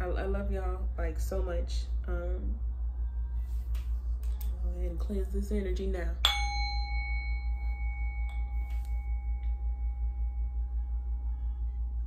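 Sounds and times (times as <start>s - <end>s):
struck metal instrument ringing: 6.2s - 11.3s.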